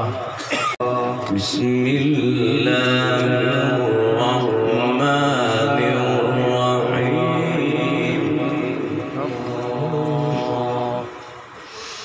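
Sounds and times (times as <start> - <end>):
man chanting melodically into microphone: 0.8 - 11.2.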